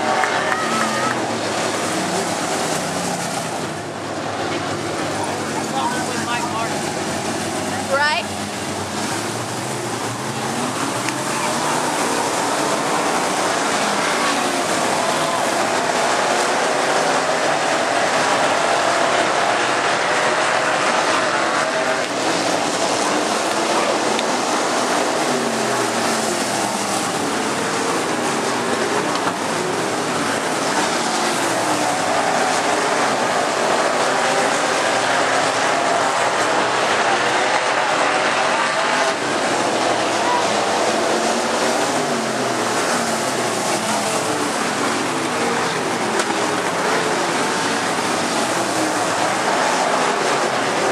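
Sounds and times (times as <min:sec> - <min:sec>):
race car engines: 0:00.0 - 0:50.9.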